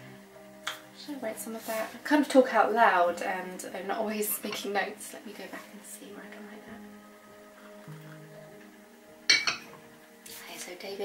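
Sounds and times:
soft background music: 0.0 - 11.0
ceramic mug clinking on stone: 9.3 - 9.7.

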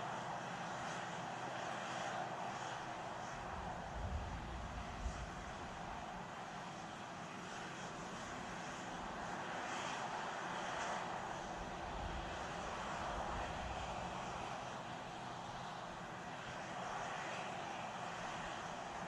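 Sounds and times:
steady rushing noise: 3.3 - 6.2
wind buffeting microphone: 3.6 - 6.1.

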